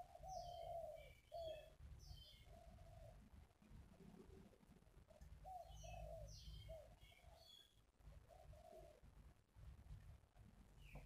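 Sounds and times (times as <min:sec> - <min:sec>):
bird cooing: 0:00.0 - 0:01.7, 0:05.4 - 0:07.5, 0:08.3 - 0:09.0.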